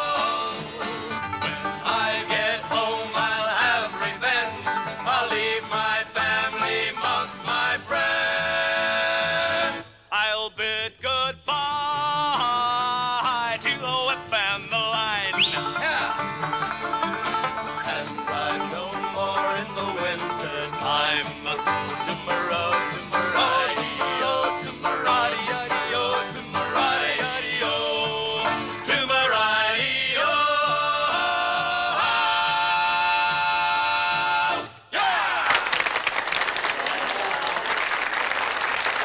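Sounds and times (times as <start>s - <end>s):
banjo: 0.0s - 10.0s, 11.7s - 34.8s
acoustic guitars: 0.0s - 10.1s, 11.4s - 34.8s.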